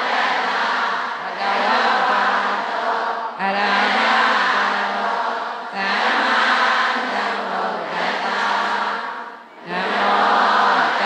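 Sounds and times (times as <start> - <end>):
many voices chanting in unison: 0.0 - 11.0.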